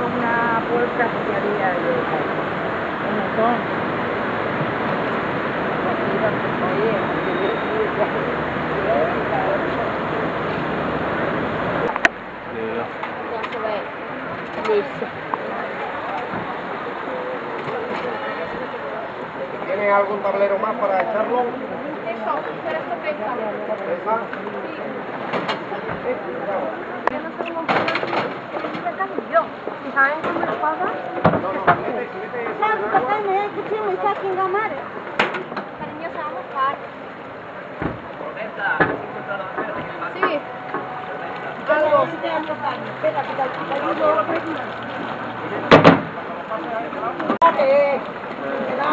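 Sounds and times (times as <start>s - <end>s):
indistinct talking: 0.0s - 48.9s
steady background noise: 0.0s - 48.9s.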